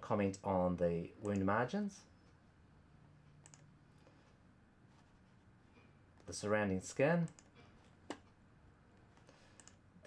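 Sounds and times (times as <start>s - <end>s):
computer mouse click: 3.3s - 3.7s, 7.2s - 8.4s, 9.0s - 9.8s.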